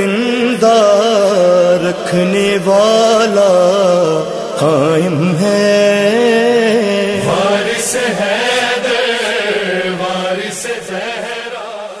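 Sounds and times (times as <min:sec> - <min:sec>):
person singing devotional chant: 0:00.0 - 0:12.0.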